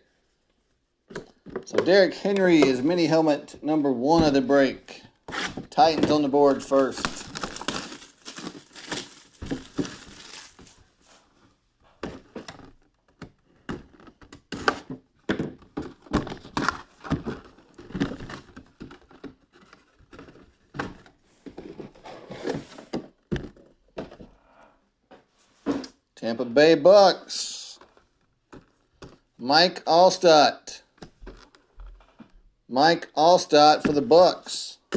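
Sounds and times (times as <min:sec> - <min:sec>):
box and plastic case handled: 0:05.2 - 0:10.8, 0:12.0 - 0:24.4.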